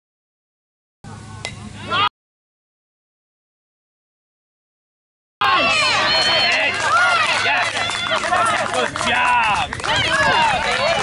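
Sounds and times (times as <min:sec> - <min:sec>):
crowd shouting and cheering: 0:01.8 - 0:02.1, 0:05.4 - 0:11.0.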